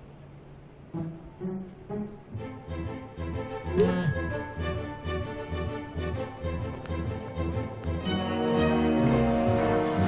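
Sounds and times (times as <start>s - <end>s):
smartphone notification chime: 3.8s - 5.0s.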